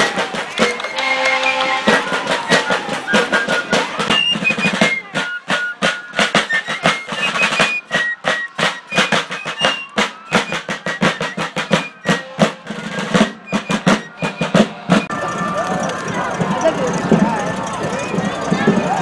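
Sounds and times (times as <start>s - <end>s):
fifes piping a melody: 0.0s - 19.0s
snare drum rolls: 0.0s - 19.0s.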